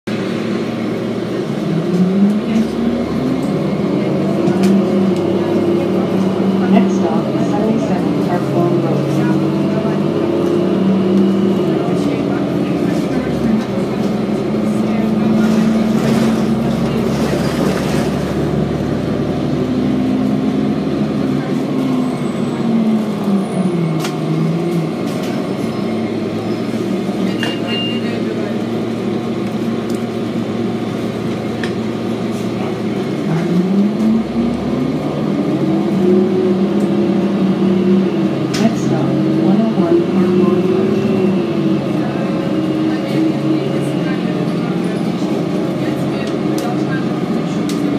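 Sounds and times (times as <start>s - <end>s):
bus diesel engine: 0.0s - 47.9s
road noise: 0.0s - 47.9s.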